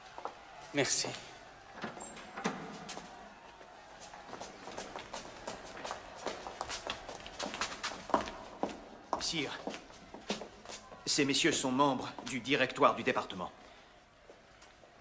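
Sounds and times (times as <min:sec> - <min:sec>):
footsteps on stone floor: 0:04.0 - 0:10.9.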